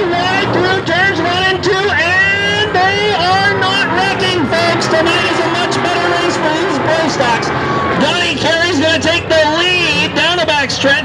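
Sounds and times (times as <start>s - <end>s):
announcer speaking: 0.0s - 11.0s
stock car engines racing: 0.0s - 11.0s.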